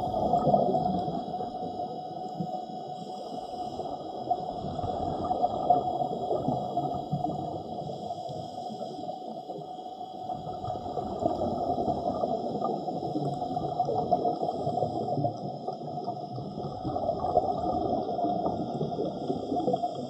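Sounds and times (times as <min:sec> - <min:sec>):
muffled underwater gurgling: 0:00.0 - 0:20.0.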